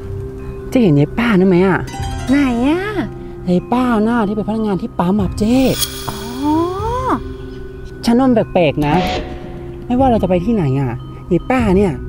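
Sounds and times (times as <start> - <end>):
soft background music: 0.1 - 12.0.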